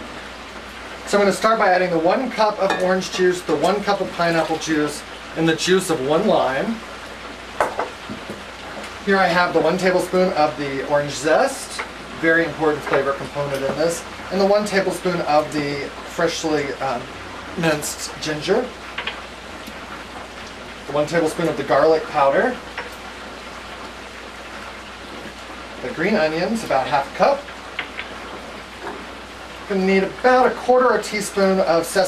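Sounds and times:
deep fryer sizzling: 0.0 - 32.0
food deep-frying in hot oil: 0.0 - 32.0.

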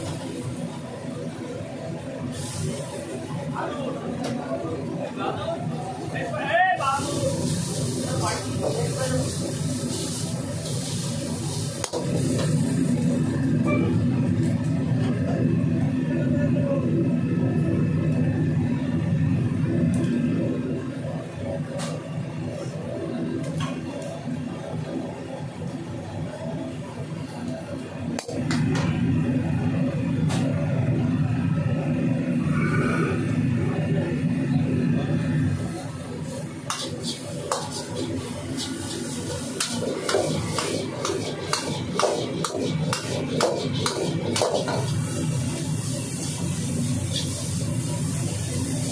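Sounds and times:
gas burner low rumble: 0.0 - 48.9
steel ladle scraping wok: 36.7 - 45.2.

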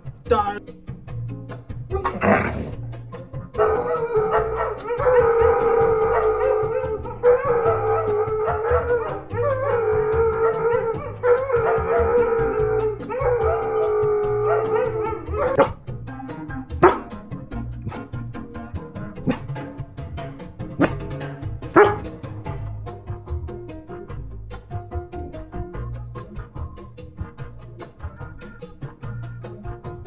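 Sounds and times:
background music: 0.0 - 30.0
dog howling: 3.6 - 15.8, 16.8 - 17.1, 21.7 - 22.1.

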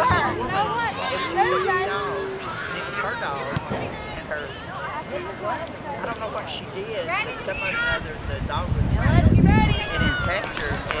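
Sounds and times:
voices calling out: 0.0 - 11.0
low rumble on microphone: 8.1 - 11.0.

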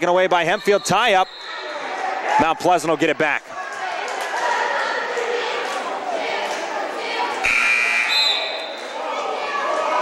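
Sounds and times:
crowd chatter: 0.0 - 10.0
scoreboard horn: 7.4 - 8.4.

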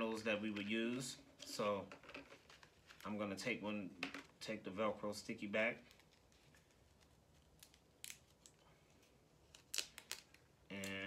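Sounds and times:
velcro pad backing peeling: 5.8 - 8.6, 9.4 - 11.0.

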